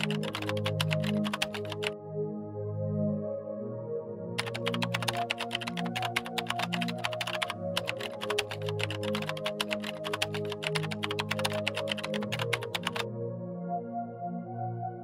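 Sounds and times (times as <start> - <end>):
computer keyboard typing: 0.0 - 2.0, 4.4 - 13.1
soft ambient music: 0.0 - 15.0.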